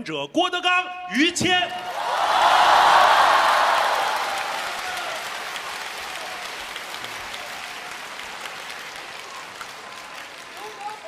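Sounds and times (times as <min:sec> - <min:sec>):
audience applauding: 0:01.8 - 0:11.0.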